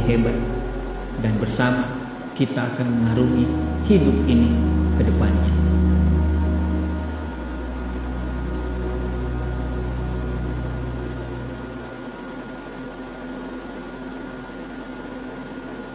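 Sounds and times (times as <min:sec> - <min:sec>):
low ambient music chord: 0:00.0 - 0:15.0
faint high hum: 0:00.0 - 0:15.9
steady hiss: 0:00.0 - 0:15.9.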